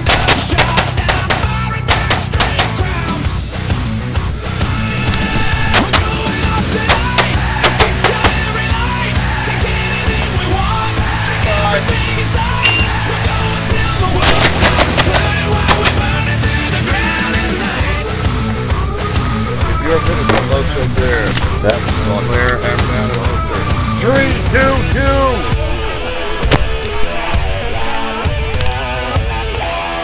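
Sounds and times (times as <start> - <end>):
rapid pistol shots: 0.0 - 2.9, 5.7 - 8.5, 14.2 - 16.3
loud rock music: 0.0 - 30.0.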